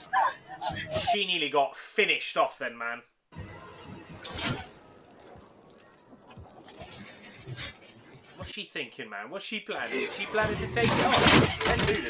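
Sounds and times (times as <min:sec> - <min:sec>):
tense soundtrack music: 0:03.3 - 0:08.4.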